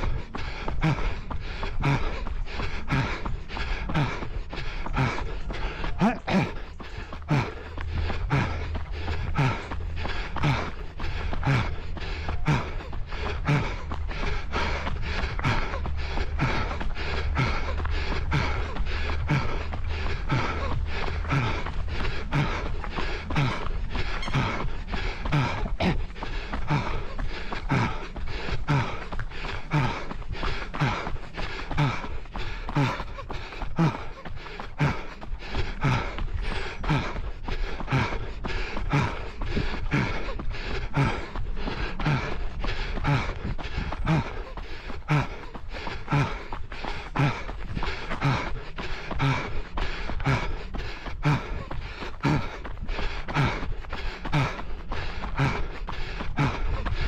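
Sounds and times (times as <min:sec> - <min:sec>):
runner breathing hard: 0:00.0 - 0:57.0
running footfalls on treadmill: 0:00.0 - 0:57.0
treadmill humming: 0:00.0 - 0:57.0.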